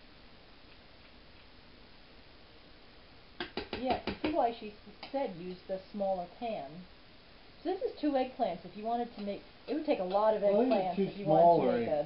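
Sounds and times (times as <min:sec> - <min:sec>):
person speaking: 0:08.7 - 0:12.0.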